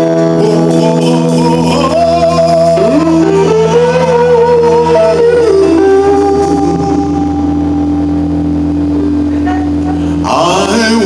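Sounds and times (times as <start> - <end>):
electric guitar note ringing: 0.0 - 11.0
low held bass note: 0.0 - 11.0.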